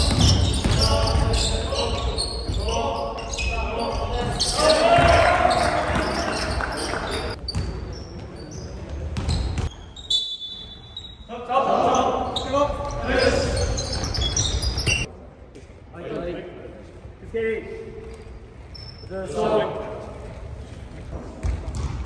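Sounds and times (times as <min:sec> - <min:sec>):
players shouting: 0:03.4 - 0:07.4.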